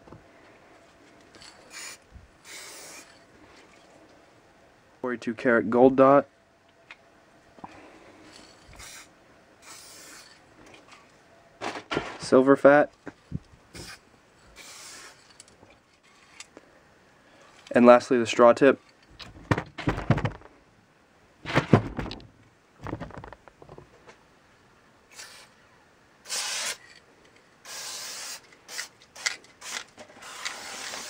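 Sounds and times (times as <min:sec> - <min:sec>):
spray can hissing: 0:01.4 - 0:03.2, 0:08.7 - 0:10.4, 0:13.7 - 0:14.0, 0:14.6 - 0:15.4, 0:26.2 - 0:26.9, 0:27.6 - 0:31.0.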